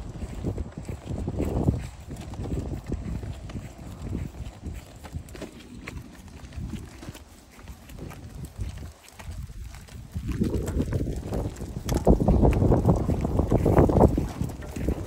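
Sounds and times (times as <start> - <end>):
footsteps: 0.0 - 15.0
tricycle rattling on concrete: 0.0 - 15.0
wind rumble on microphone: 0.0 - 15.0.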